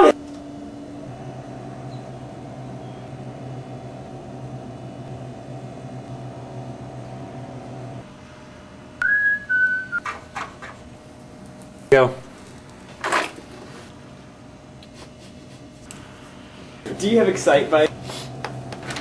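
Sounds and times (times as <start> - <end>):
steady low hum: 0.0 - 19.0
whistled note stepping down: 9.0 - 10.0.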